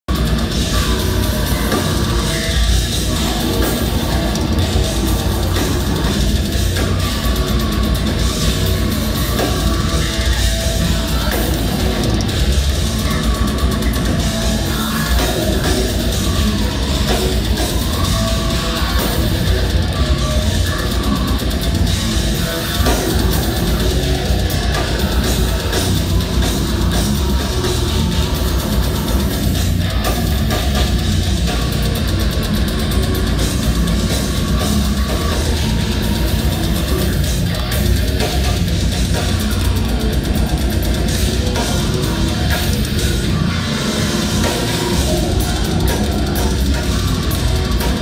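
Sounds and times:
bass guitar: 0.0 - 48.0
death metal band playing live: 0.0 - 48.0
distorted electric guitar: 0.0 - 48.0
drum kit: 0.0 - 48.0.

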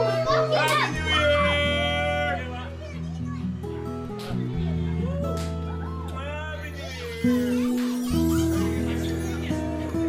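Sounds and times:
crowd shouting: 0.0 - 3.0.

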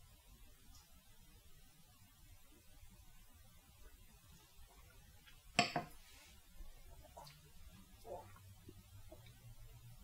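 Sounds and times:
glass knocking on wooden table: 5.6 - 5.9.

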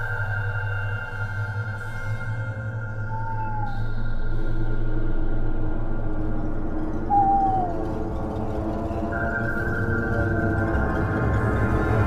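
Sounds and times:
low steady drone: 0.0 - 12.0
owl hoot: 3.0 - 3.8, 7.0 - 8.0.

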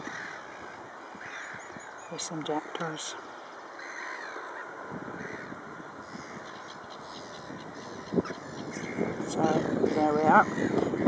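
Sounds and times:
gulls and jackdaws calling: 0.0 - 11.0.

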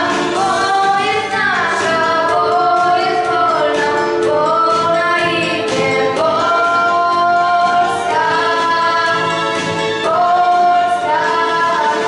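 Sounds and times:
girls singing: 0.0 - 12.0
instrumental accompaniment: 0.0 - 12.0.

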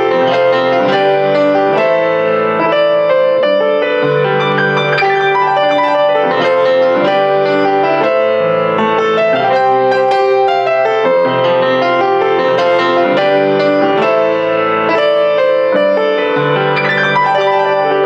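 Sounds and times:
piano playing chords and melody: 0.0 - 18.0.

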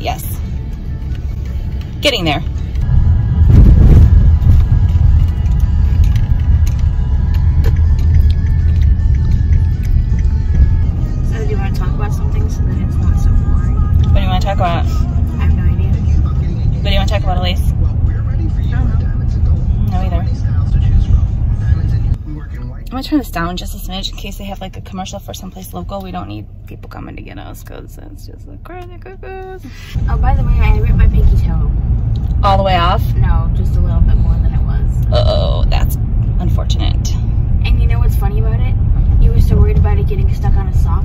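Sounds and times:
car radio music with singing: 0.0 - 37.0
road and engine rumble: 0.0 - 41.0.

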